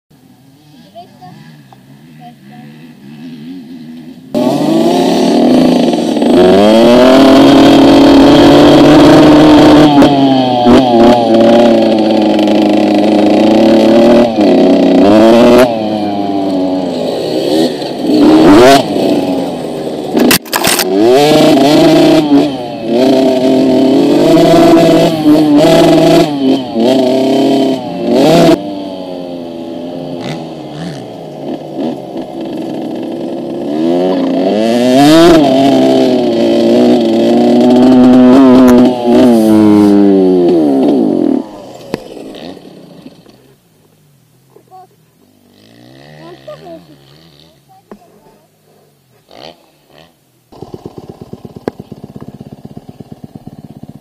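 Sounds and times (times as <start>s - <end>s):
motorcycle engine revving: 0.2s - 54.0s.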